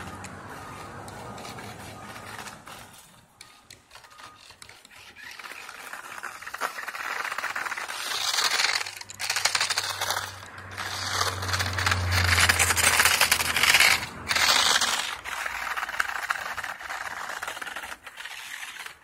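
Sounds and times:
rc car crackling over snow: 0.0s - 19.0s.

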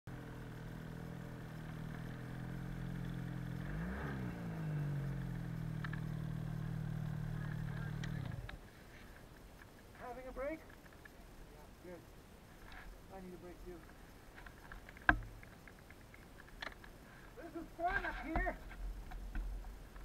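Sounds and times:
snowmobile engine running: 0.1s - 8.6s.

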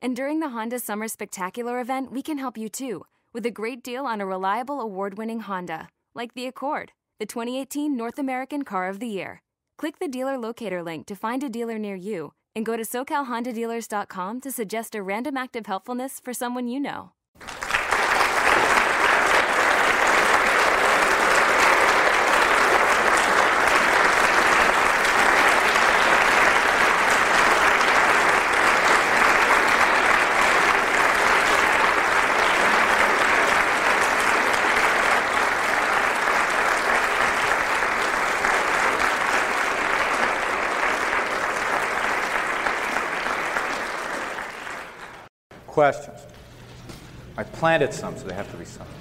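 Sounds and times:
audience applauding: 17.4s - 45.3s.

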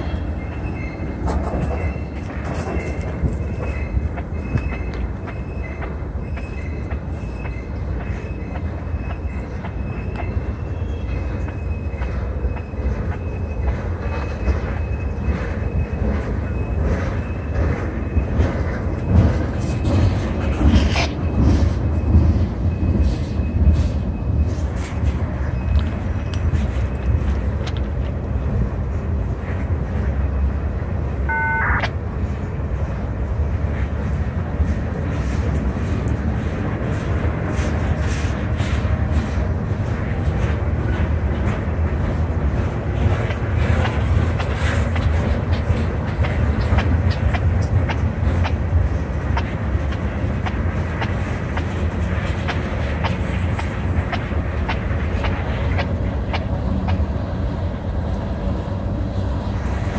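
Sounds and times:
train cars clicking and clanking: 0.0s - 59.9s
train wheels rumbling on rail: 0.0s - 59.9s
high-pitched tone: 31.3s - 32.0s.

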